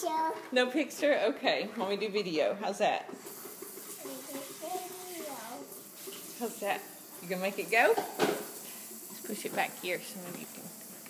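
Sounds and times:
child's wordless vocal sound: 4.0s - 5.7s.

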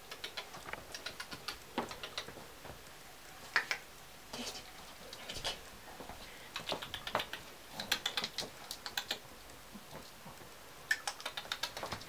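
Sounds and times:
dog claws clicking on floor: 0.1s - 2.8s, 6.5s - 9.2s, 10.9s - 12.0s.

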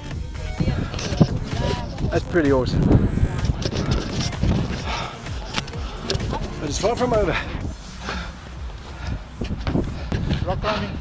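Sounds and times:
footsteps on rock: 0.6s - 10.5s.

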